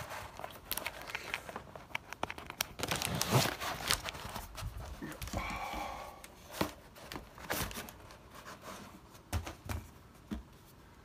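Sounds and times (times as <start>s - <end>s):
plastic packaging crinkling: 0.0s - 5.4s.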